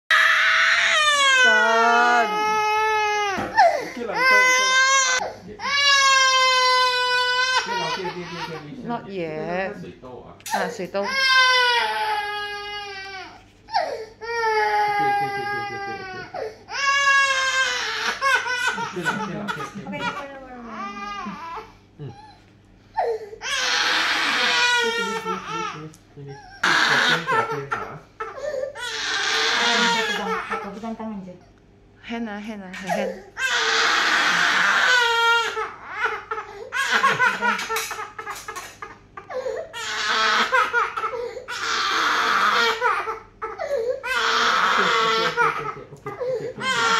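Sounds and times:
toddler crying: 0.1s - 8.7s, 11.0s - 22.4s, 23.0s - 25.8s, 26.4s - 30.7s, 32.9s - 46.9s.

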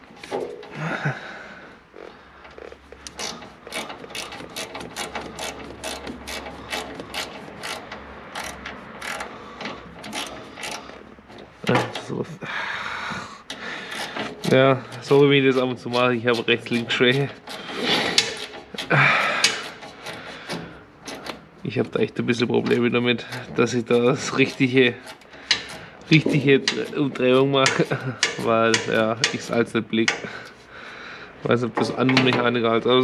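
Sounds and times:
ratchet wrench clicking: 3.0s - 11.0s, 13.5s - 21.4s, 26.4s - 30.3s.

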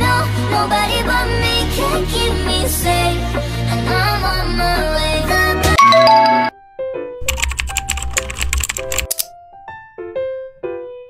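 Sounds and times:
light piano tune: 5.8s - 11.0s
keyboard typing clicks: 7.2s - 9.3s.

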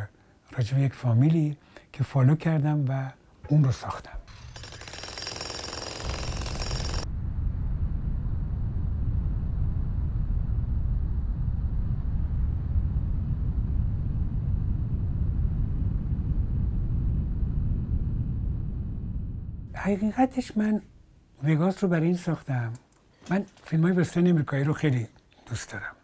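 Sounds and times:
jackhammer hammering: 4.3s - 7.0s
low rumble of machinery: 6.3s - 19.8s.

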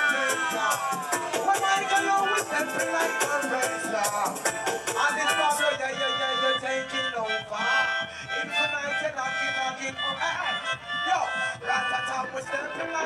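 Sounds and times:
melodica melody: 0.0s - 13.0s
reggae backing rhythm: 0.0s - 13.0s.

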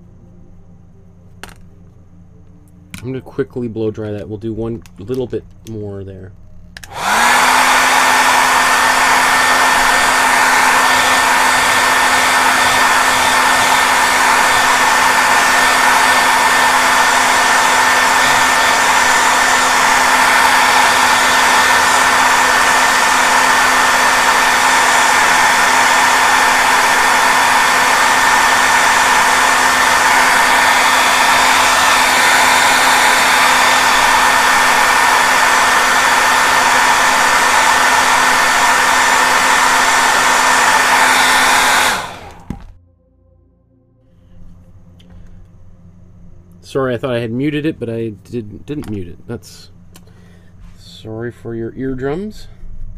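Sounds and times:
hair dryer running: 6.8s - 42.8s.

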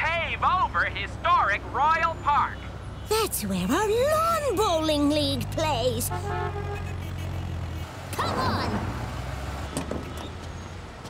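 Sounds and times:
idling car and truck engines: 0.0s - 11.0s.

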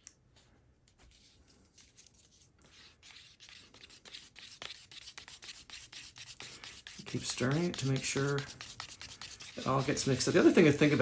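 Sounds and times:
stir stick scraping paper cup: 1.1s - 11.0s.

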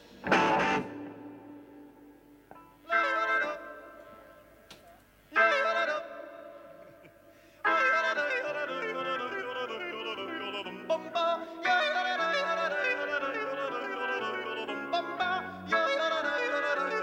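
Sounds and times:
drums: 0.0s - 1.7s
rock band playing live: 0.0s - 1.8s
organ: 6.8s - 17.0s.

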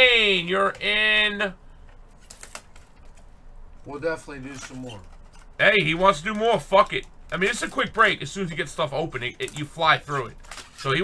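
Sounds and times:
man speaking: 0.0s - 1.6s, 3.8s - 11.0s.

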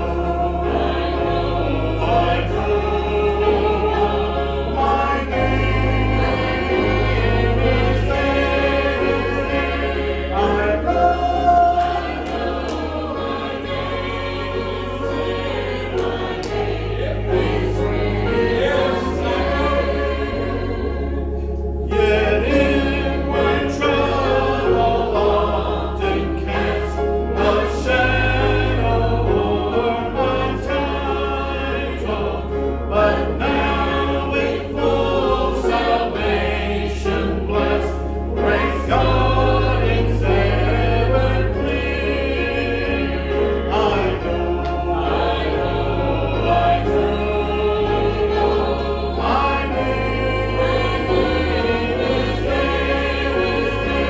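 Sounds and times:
congregation singing a hymn: 0.0s - 54.0s
instrumental accompaniment bass notes: 0.0s - 54.0s.

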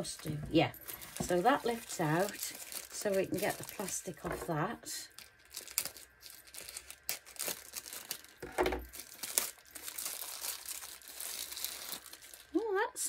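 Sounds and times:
plastic wrapping crinkling and tearing: 0.0s - 13.0s.

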